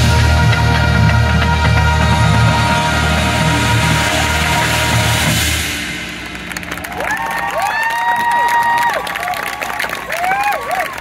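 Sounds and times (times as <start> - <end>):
marching band chord over drums: 0.0 - 8.2
crowd applause: 6.1 - 11.0
crowd cheering and whooping: 6.6 - 11.0.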